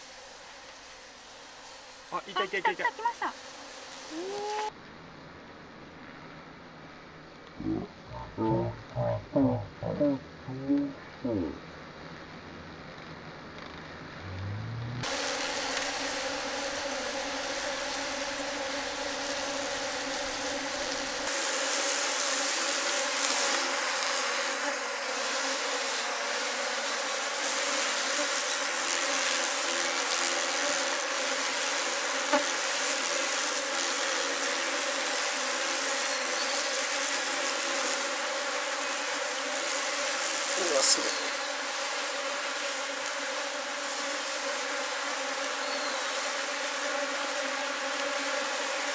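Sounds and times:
swarm of bees buzzing: 0.0 - 4.7, 14.2 - 48.9.

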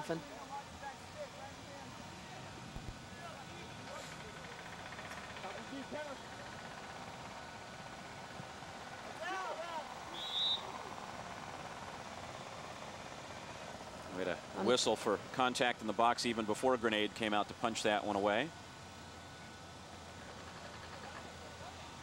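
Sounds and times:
referee's whistle blast: 10.1 - 10.7.

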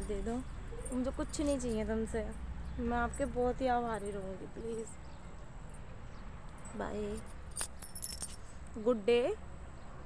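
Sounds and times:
metallic jingle: 6.6 - 8.5.

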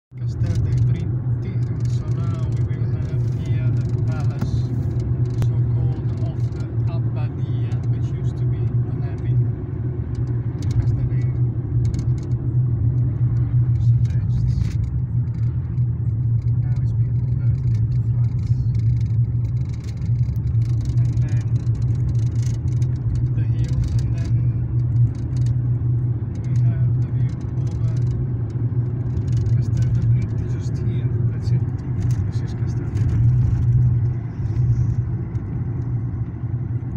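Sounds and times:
car road drone: 0.1 - 36.9.

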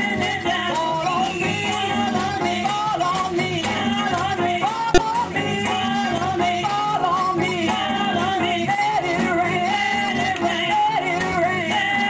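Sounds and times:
church group singing: 0.0 - 12.0.

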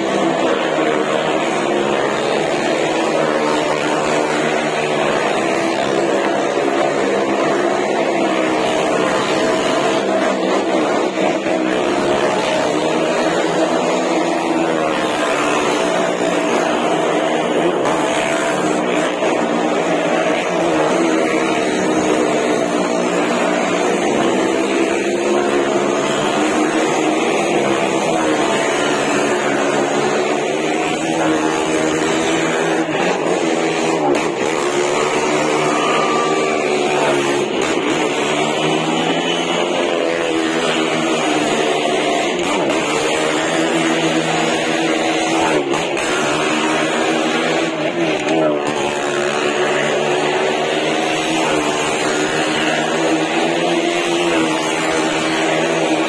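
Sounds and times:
car and motorcycle engines revving: 0.0 - 56.0.

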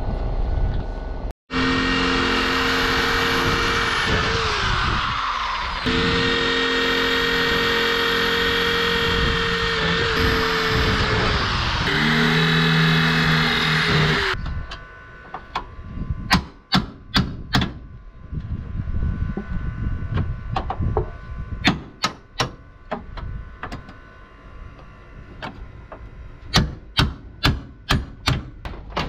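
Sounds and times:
electric drill boring into metal: 1.5 - 14.5.

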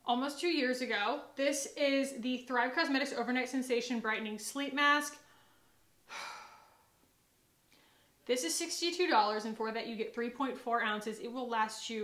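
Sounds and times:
woman's soft breath: 5.2 - 7.0, 7.7 - 8.2.

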